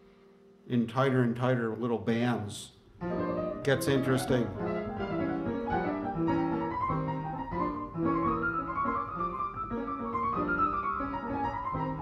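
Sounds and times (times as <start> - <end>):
jazz piano improvisation: 3.0 - 12.0.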